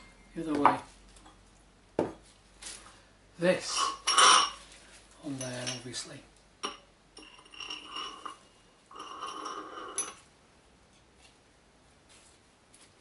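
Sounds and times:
metal scraping with thin ring: 3.6 - 4.7, 6.6 - 10.3.

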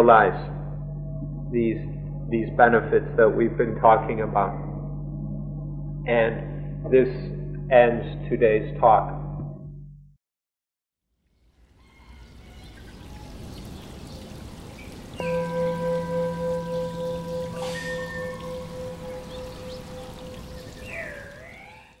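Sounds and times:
soft water-like rushing: 11.5 - 22.0
pulsing ringing tone: 15.2 - 22.0.

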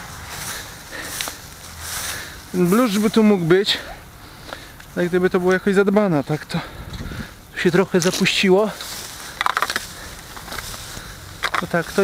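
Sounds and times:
rake scraping through dry grass: 0.0 - 3.3, 8.0 - 12.0
leaves rustling: 0.0 - 12.0.

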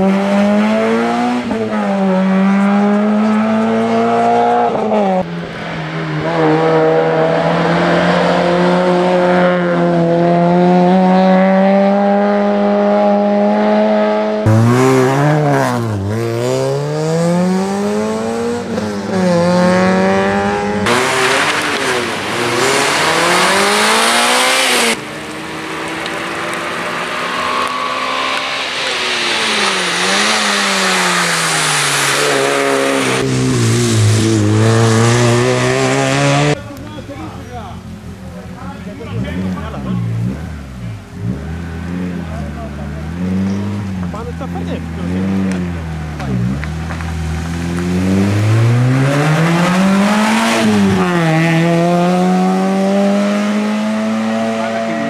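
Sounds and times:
car engine revving hard: 0.0 - 5.3, 6.0 - 38.2, 38.8 - 55.0.

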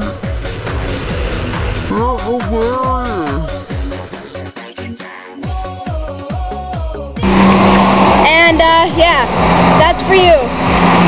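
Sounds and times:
traffic on a wet road: 0.0 - 2.0, 7.2 - 11.0
woman speaking: 8.2 - 10.5.

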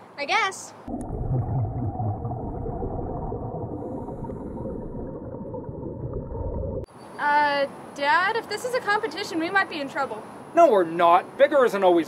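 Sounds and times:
muffled underwater gurgling: 0.9 - 6.9.

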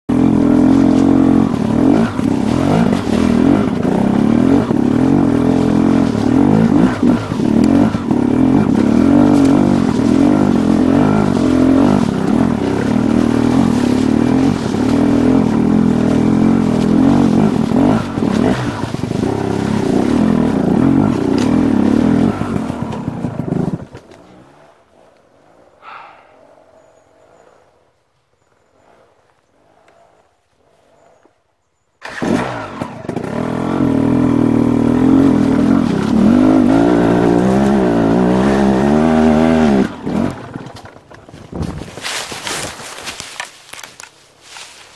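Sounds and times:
dirt bike engine revving: 0.1 - 24.5, 32.0 - 41.1.

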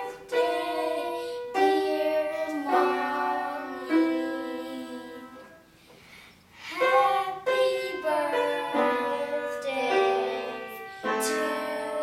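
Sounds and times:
piano music: 0.0 - 5.7, 6.7 - 12.0.

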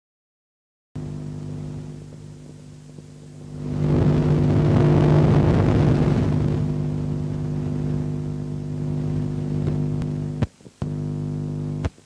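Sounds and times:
steady low hum: 1.0 - 12.0
rush of noise: 3.6 - 7.6.

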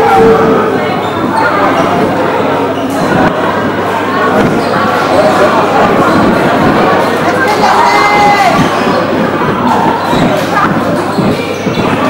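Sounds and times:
players' voices echoing: 0.0 - 12.0.

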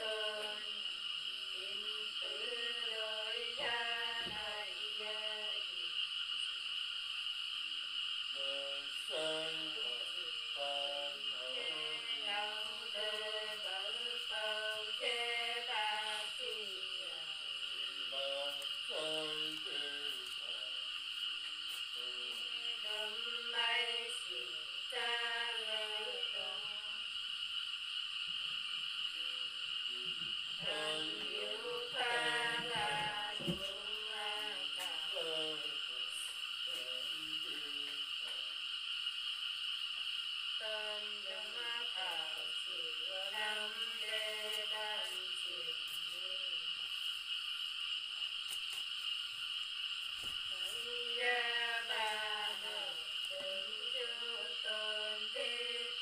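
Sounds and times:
woman singing unaccompanied: 0.0 - 6.0, 8.4 - 20.8, 22.0 - 27.0, 30.6 - 38.0, 40.6 - 46.6, 50.5 - 56.0
steady high hiss: 0.0 - 56.0.

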